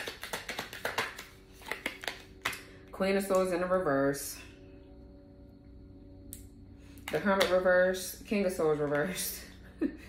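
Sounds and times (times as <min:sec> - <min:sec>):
cards snapping and flicking: 0:00.0 - 0:02.7.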